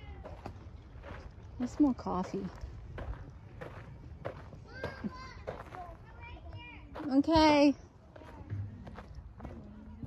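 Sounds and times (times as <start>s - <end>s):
distant children's voices: 0.0s - 0.8s, 3.1s - 7.1s, 8.0s - 10.0s
footsteps on gravel: 0.0s - 10.0s.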